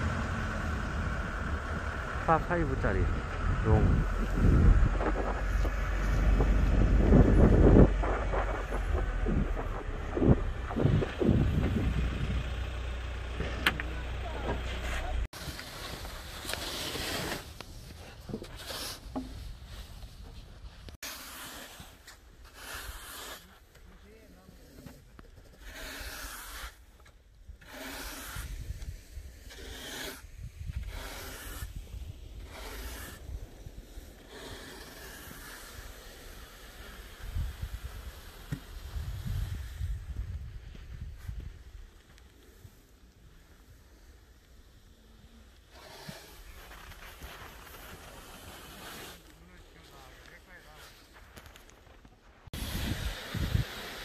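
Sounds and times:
vehicle rumbling slowly: 0:00.0 - 0:16.4
shovel scraping wet snow: 0:14.7 - 0:19.1, 0:21.0 - 0:23.7, 0:25.5 - 0:26.9, 0:27.6 - 0:39.9, 0:45.6 - 0:51.2, 0:52.6 - 0:54.0.

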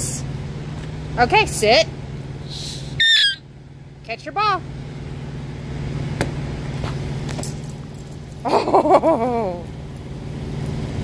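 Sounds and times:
rubber dog toy squeak: 0:03.0 - 0:03.4.

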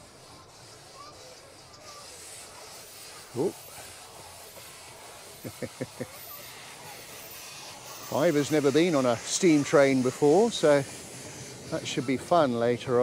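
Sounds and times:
steam locomotive hissing: 0:00.0 - 0:13.0
man laughing: 0:05.4 - 0:06.2.

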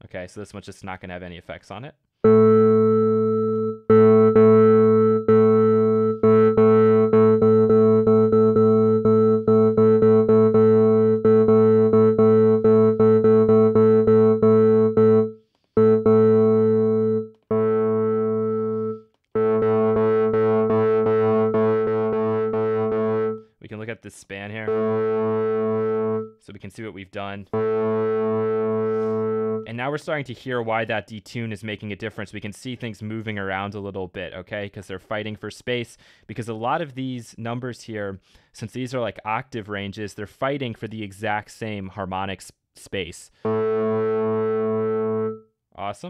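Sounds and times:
distorted low synth organ note: 0:02.3 - 0:23.4, 0:24.7 - 0:26.3, 0:27.6 - 0:29.7, 0:43.5 - 0:45.4.

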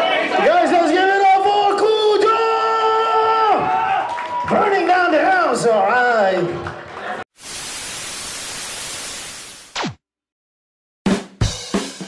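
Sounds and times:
television static hiss: 0:07.4 - 0:09.6.

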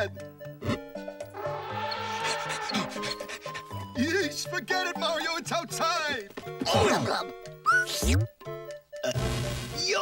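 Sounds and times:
cartoon background music: 0:00.0 - 0:10.0
character laughing raspily: 0:02.1 - 0:03.9.

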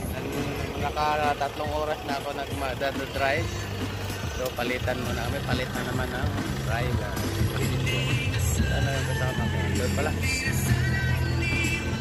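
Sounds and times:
music with stepping bass line: 0:00.0 - 0:12.0.

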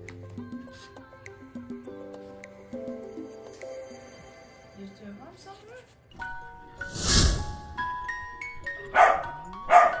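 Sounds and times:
soft background music: 0:00.0 - 0:10.0
dog barks: 0:08.9 - 0:10.0.

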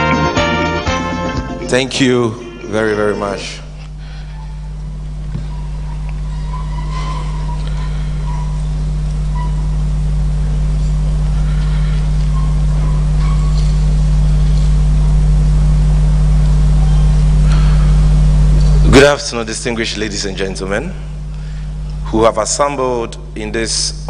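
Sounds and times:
low electrical hum: 0:00.0 - 0:24.0
faint murmurs: 0:03.3 - 0:14.4.

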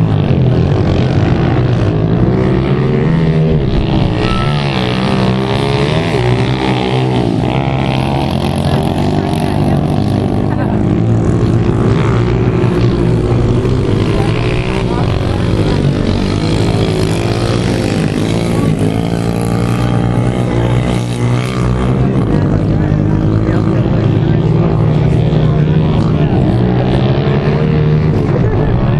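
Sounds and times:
pit bike engines revving: 0:00.0 - 0:28.9.

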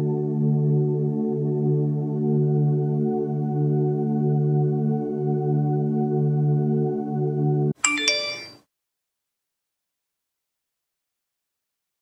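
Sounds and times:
ambient music drone: 0:00.0 - 0:07.8
two-note chime: 0:07.8 - 0:08.6.

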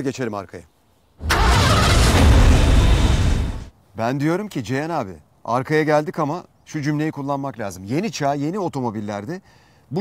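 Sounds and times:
noisy transition burst with rumble: 0:01.2 - 0:03.7.

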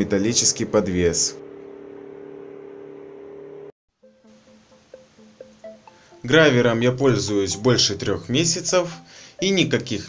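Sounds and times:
faint background music: 0:04.0 - 0:10.0.

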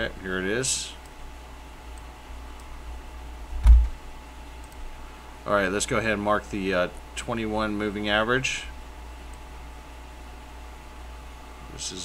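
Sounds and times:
low steady hum: 0:00.0 - 0:12.0
thump: 0:03.6 - 0:03.9
faint computer clicks: 0:04.6 - 0:04.8.

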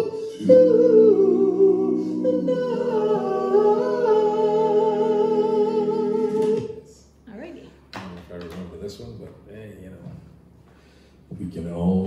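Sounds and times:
man singing with vibrato: 0:00.0 - 0:06.8.

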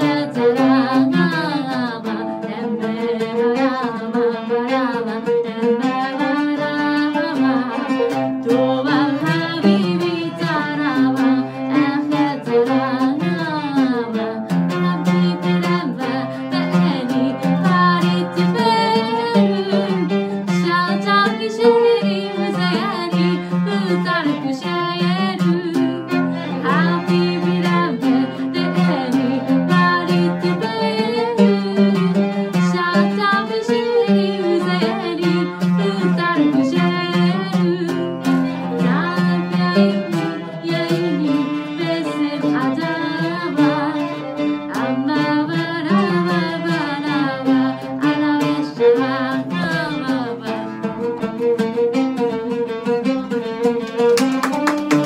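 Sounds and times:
woman singing: 0:00.0 - 0:51.3
bowed violin: 0:00.0 - 0:55.0
plucked oud notes: 0:00.0 - 0:55.0.

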